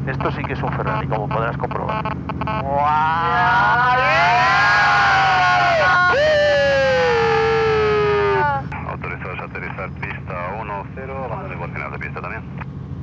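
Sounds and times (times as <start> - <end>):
helicopter engine and rotor hum: 0.0 - 13.0.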